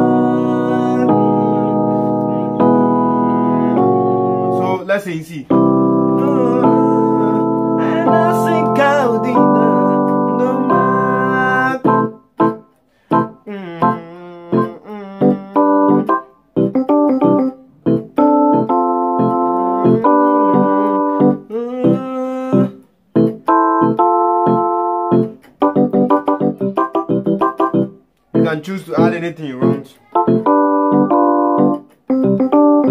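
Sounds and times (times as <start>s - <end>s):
electronic keyboard playing chords: 0.0s - 32.9s.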